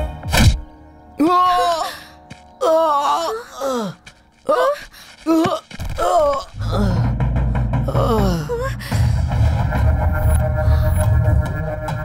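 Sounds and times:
low background music: 0.0s - 12.0s
person crying out in pain: 1.2s - 7.1s, 7.9s - 9.0s.

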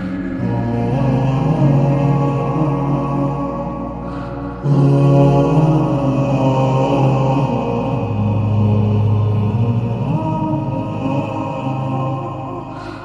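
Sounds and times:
male voices chanting a cappella: 0.0s - 13.0s.

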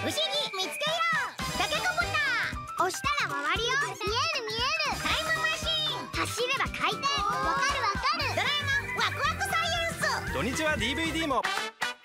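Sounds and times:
children's voices: 0.0s - 10.0s
background music: 0.0s - 12.0s.

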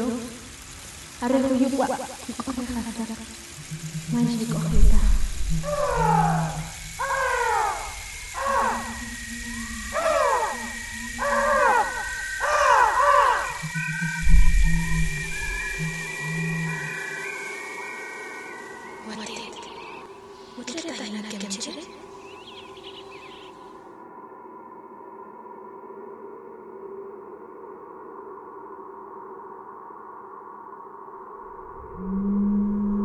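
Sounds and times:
woman speaking: 1.2s - 3.3s, 4.1s - 5.2s, 20.6s - 22.0s.

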